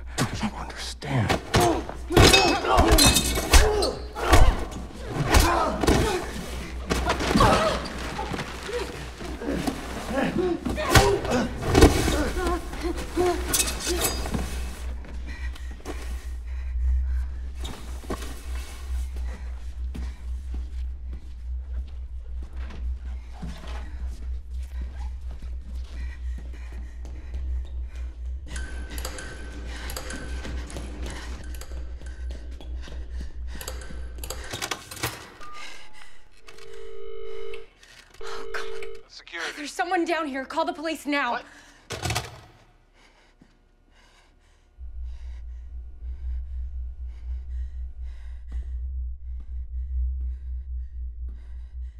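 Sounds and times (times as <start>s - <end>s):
low rumbling drone: 11.3s - 34.4s, 44.4s - 51.9s
telephone line tone: 36.4s - 39.0s.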